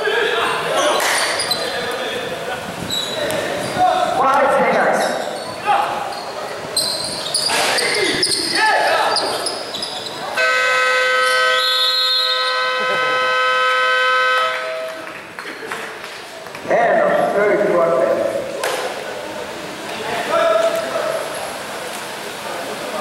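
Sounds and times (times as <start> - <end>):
players shouting: 0.0 - 14.6
basketball game horn blast: 10.3 - 15.1.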